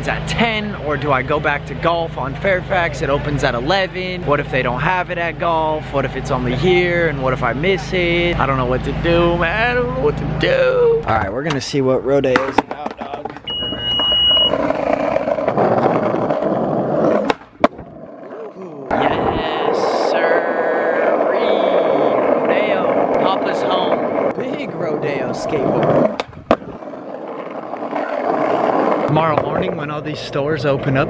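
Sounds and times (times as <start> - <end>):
skateboard wheels rumbling on asphalt: 0.0 - 31.0.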